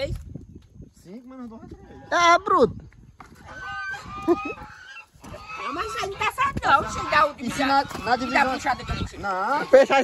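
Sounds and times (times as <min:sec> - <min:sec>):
men laughing: 0:03.8 - 0:05.0, 0:09.4 - 0:10.0.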